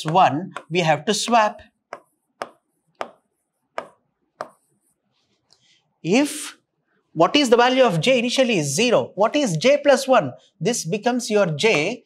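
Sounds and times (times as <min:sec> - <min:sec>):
marker tip tapping board: 0:00.0 - 0:04.7
marker scratching on board: 0:01.9 - 0:05.3.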